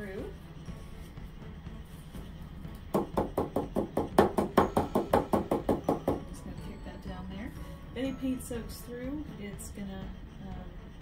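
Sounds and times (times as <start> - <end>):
hollow knocks on canvas: 2.9 - 6.3.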